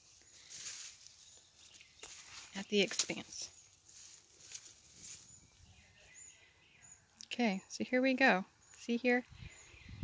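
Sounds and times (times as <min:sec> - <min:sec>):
soft rustling: 0:00.0 - 0:05.4.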